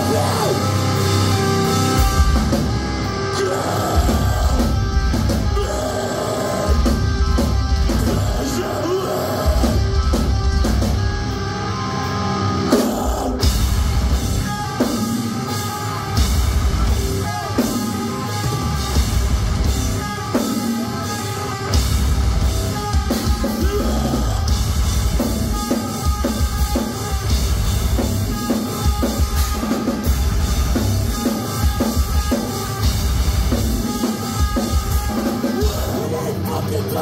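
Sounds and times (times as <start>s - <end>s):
distorted guitars and bass: 0.0s - 37.0s
drum kit: 0.0s - 37.0s.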